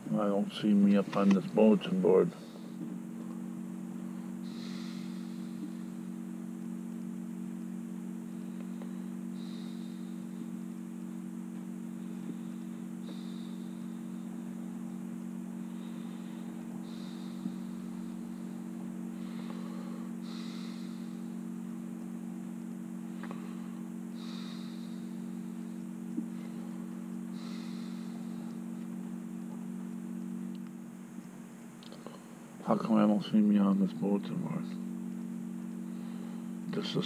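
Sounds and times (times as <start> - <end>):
faint hiss: 0.0 - 37.0
low electrical hum: 0.0 - 37.0.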